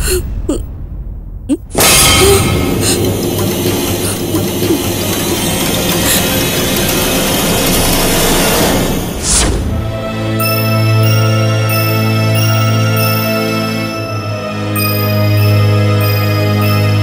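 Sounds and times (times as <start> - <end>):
dramatic background music: 0.0 - 17.0.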